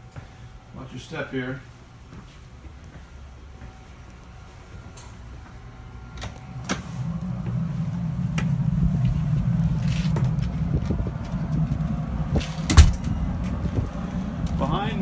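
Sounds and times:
low ship rumble: 0.0s - 15.0s
footsteps: 1.6s - 14.7s.

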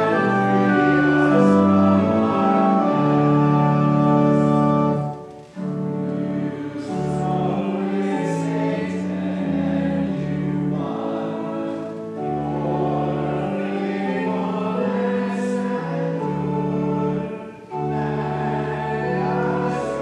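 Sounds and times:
congregation singing a hymn: 0.0s - 20.0s
pipe organ: 0.0s - 20.0s.

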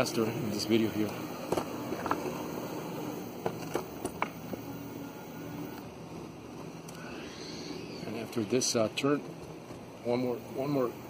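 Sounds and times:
tyres rolling on concrete: 0.0s - 6.8s
electric motor hum: 0.0s - 11.0s.

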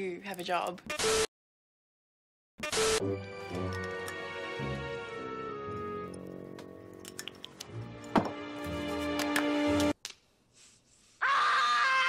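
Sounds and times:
boy screaming: 11.2s - 12.0s.

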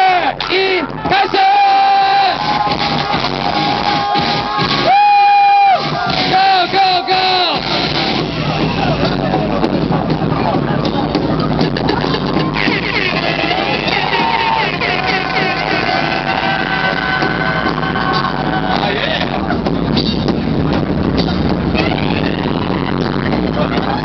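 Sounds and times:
crowd shouting and cheering: 0.0s - 24.0s
loud club music: 0.0s - 24.0s.

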